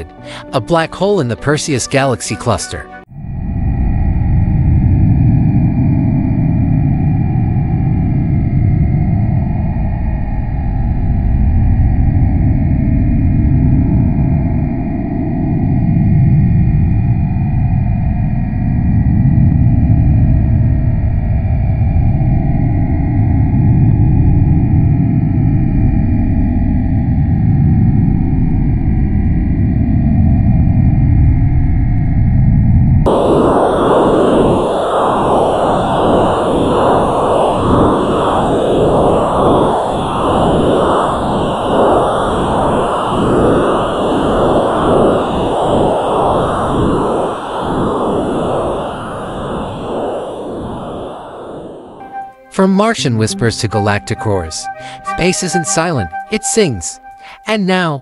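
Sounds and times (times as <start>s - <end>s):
deep low drone: 3.0s - 53.2s.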